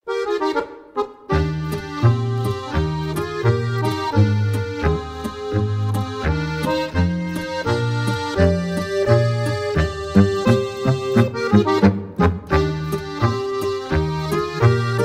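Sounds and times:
instrumental folk dance music: 0:00.1 - 0:15.0.

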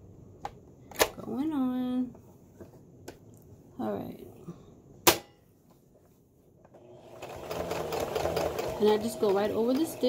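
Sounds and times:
electric sewing machine running: 0:06.8 - 0:10.0.

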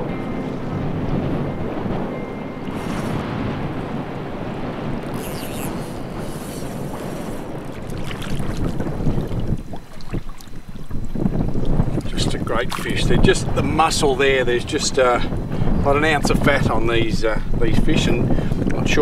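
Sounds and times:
shallow seawater: 0:00.0 - 0:19.0
wind buffeting microphone: 0:00.0 - 0:19.0
splashes in water: 0:06.6 - 0:10.9.

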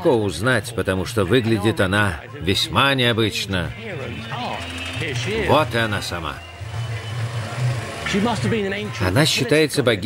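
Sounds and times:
man speaking: 0:00.0 - 0:06.4
noisy hall: 0:02.0 - 0:10.0.

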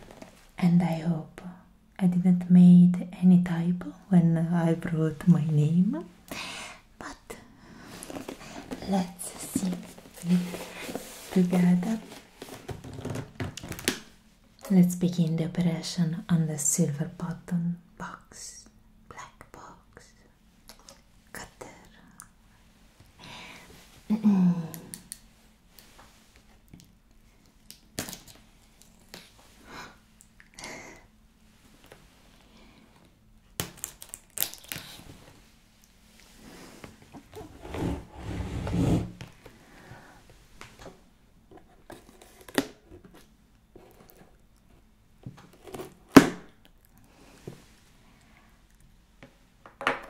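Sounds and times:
box being handled: 0:08.0 - 0:13.9
packing tape and cardboard crackling: 0:33.6 - 0:35.0.

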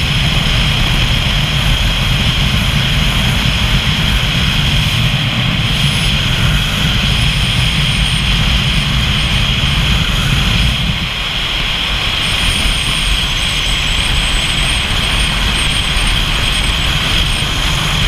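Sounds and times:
faint high whine: 0:00.0 - 0:18.0
wind rush and road noise: 0:00.0 - 0:18.0.

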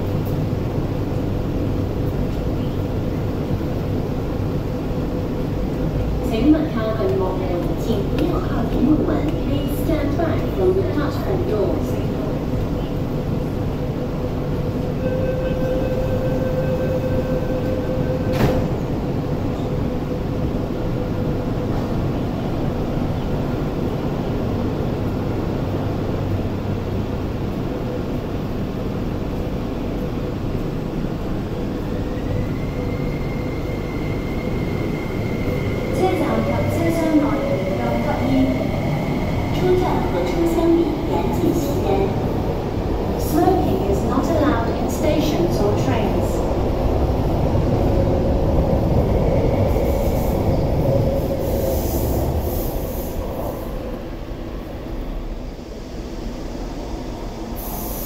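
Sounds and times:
train rumble: 0:00.0 - 0:58.0.

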